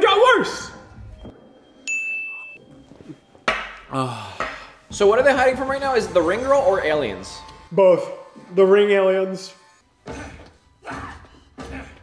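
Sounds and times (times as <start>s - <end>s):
bright ding: 1.8s - 2.6s.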